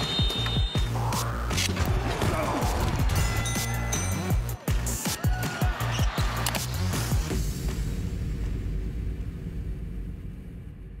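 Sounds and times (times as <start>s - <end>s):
deep rumble: 7.8s - 11.0s.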